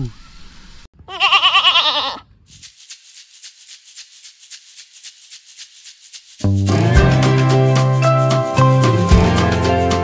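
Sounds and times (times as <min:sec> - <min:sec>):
goat bleating: 0:01.0 - 0:02.2.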